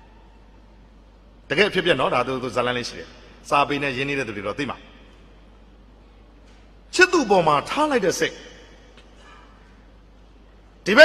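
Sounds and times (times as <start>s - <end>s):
faint background hiss: 0.0s - 11.0s
man speaking: 6.9s - 8.6s.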